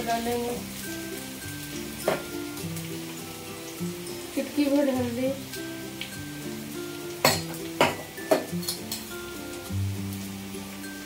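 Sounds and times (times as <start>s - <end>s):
background music: 0.0s - 11.0s
onion sizzling in hot oil: 0.0s - 11.0s.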